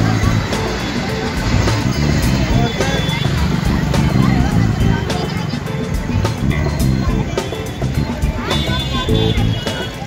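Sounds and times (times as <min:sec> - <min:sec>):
crowd voices: 0:00.0 - 0:10.0
music playing: 0:00.0 - 0:10.0
road traffic: 0:00.0 - 0:10.0.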